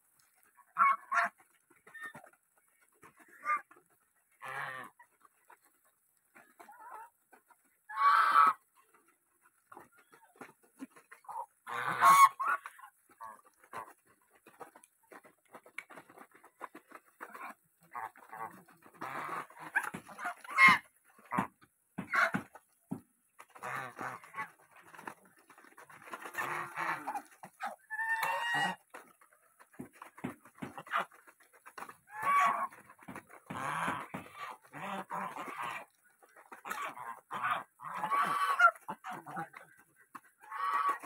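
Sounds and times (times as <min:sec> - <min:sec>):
geese honking: 0:00.2 - 0:02.3, 0:07.9 - 0:08.6, 0:11.1 - 0:14.6, 0:17.2 - 0:22.6, 0:23.4 - 0:29.0, 0:30.8 - 0:41.0.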